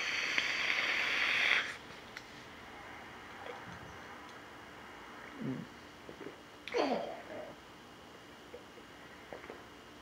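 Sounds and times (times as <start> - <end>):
vape coil sizzling: 0.0 - 1.8
steady hiss of air: 0.0 - 3.3.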